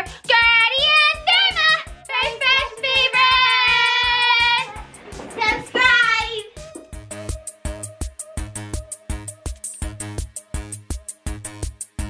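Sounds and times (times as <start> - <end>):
background music with steady beat: 0.0 - 12.0
girl singing loudly: 0.3 - 4.8, 5.4 - 6.6.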